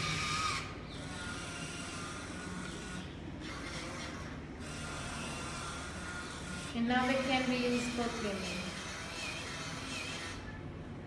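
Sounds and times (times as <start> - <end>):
small motor whirring: 0.0 - 10.6.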